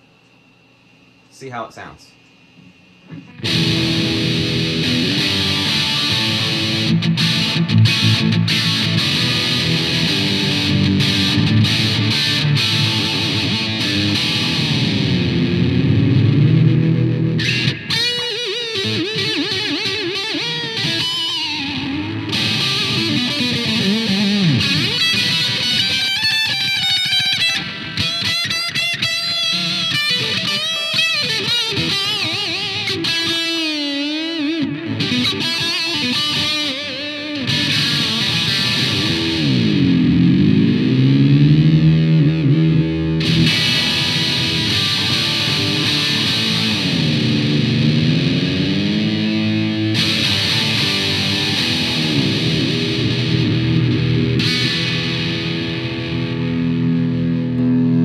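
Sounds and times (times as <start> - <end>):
distorted electric guitar lead: 3.0 - 58.0.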